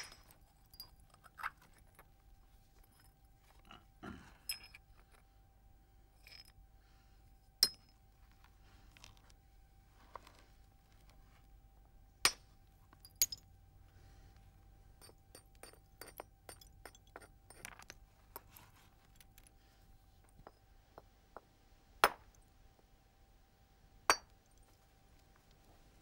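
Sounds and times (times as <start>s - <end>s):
hammerstone striking flint: 24.1s - 24.3s.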